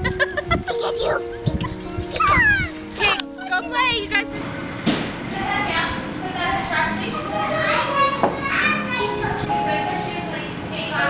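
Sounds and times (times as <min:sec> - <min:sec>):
children calling and chattering: 0:00.0 - 0:11.0.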